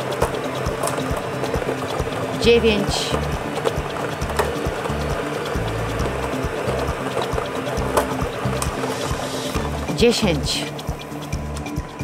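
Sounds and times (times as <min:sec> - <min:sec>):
plastic balls clattering in drum: 0:00.0 - 0:09.9
background music with low beat: 0:00.0 - 0:12.0.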